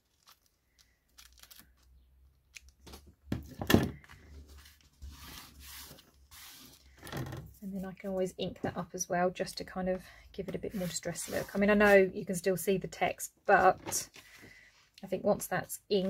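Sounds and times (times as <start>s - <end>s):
tape rubbed onto paper: 5.0s - 6.9s.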